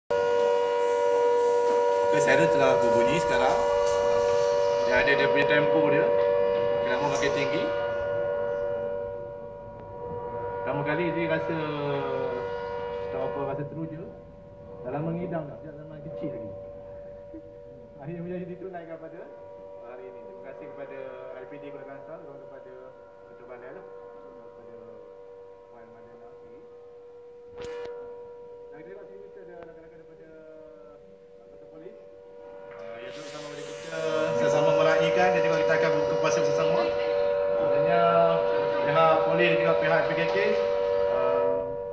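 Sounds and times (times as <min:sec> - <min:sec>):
electric siren steady pitch: 0:00.1 - 0:41.9
steady tonal hum: 0:00.1 - 0:41.9.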